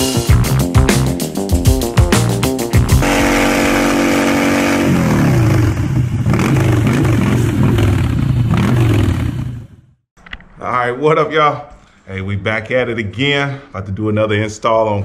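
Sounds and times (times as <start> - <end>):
music with a beat: 0.0 - 3.0
motorcycle engine revving: 3.0 - 10.0.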